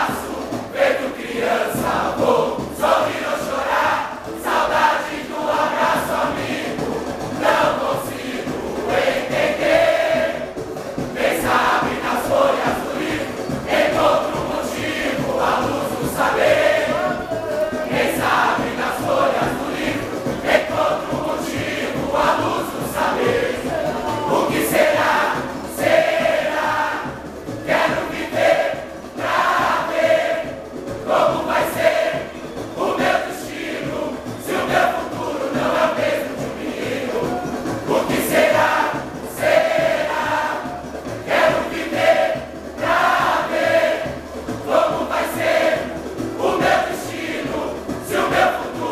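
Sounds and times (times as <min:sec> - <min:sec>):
mixed choir singing over music: 0:00.0 - 0:48.9
steady drum beat: 0:00.0 - 0:48.9.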